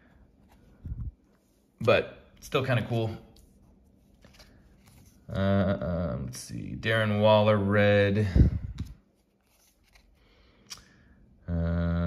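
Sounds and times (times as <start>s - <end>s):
trading cards sliding together: 8.8s - 10.9s.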